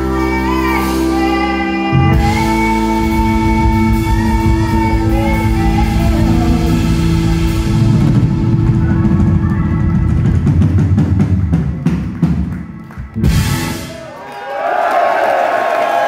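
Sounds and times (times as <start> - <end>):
live rock band playing: 0.0 - 14.2
crowd cheering and whooping: 7.1 - 11.2, 11.8 - 16.0.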